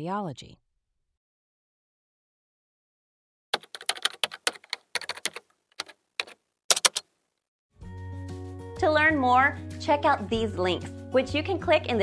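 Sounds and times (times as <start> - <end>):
typing on computer keyboard: 3.6 - 7.1.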